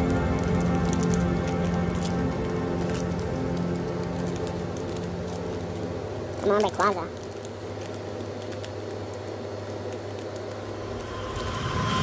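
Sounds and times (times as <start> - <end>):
background music of held tones: 0.0 - 12.0
foil wrapper crinkling: 0.0 - 12.0.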